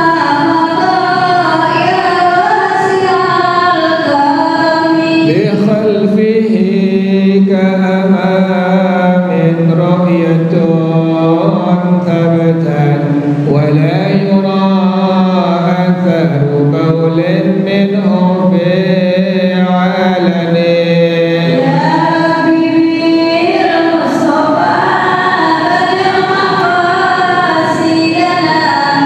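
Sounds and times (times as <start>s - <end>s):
man chanting into a microphone: 4.9s - 24.4s.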